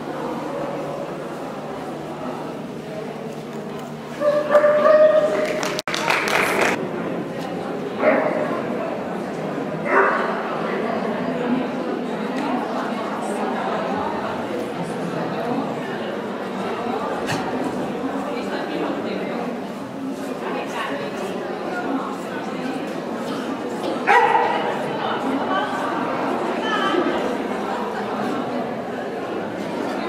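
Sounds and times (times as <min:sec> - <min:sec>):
murmur of voices: 0:00.0 - 0:30.0
dog barking: 0:09.9 - 0:10.3, 0:24.1 - 0:24.6.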